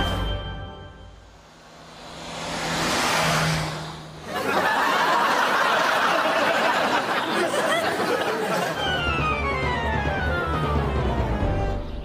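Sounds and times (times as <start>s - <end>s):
car driving past at speed: 1.3s - 6.2s.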